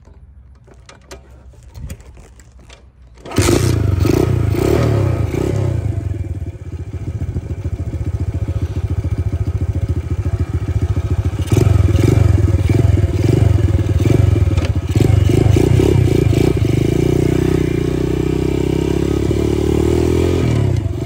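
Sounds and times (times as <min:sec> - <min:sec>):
small motorcycle engine: 0:03.2 - 0:21.0.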